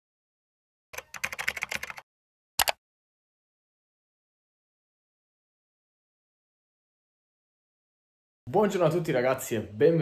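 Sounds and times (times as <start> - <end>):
computer keyboard typing: 1.0 - 2.8.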